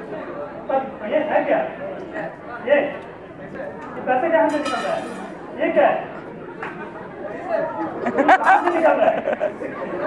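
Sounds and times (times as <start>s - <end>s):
quiet indistinct chatter: 0.0s - 10.0s.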